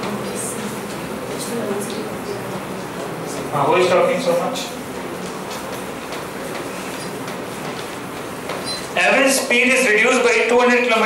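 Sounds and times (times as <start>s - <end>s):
faint students' voices: 0.0s - 11.0s
room noise murmur: 0.0s - 11.0s.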